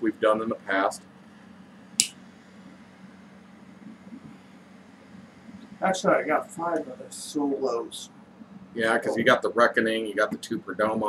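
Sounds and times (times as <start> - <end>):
faint room hum: 0.0 - 11.0
torch lighter click: 2.0 - 2.2.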